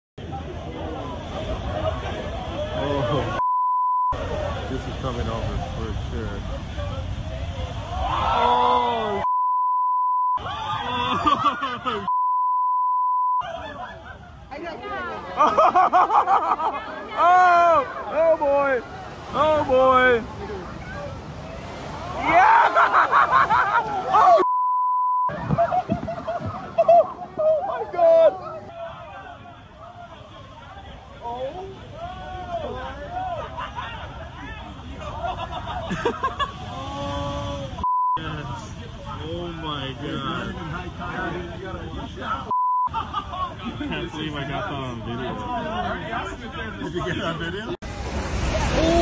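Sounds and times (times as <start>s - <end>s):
people talking: 0.2s - 3.4s, 4.2s - 9.3s, 13.4s - 24.5s, 25.3s - 47.8s
censor bleep tone: 3.4s - 4.2s, 9.2s - 10.4s, 12.1s - 13.4s, 24.4s - 25.3s, 37.8s - 38.2s, 42.5s - 42.9s
excited voices: 6.4s - 9.3s, 10.4s - 12.1s, 13.4s - 24.5s, 25.3s - 39.2s, 48.4s - 49.0s.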